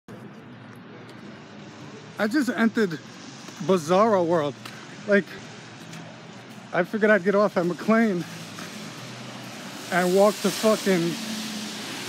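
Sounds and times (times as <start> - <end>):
street traffic hum: 0.1 - 12.0.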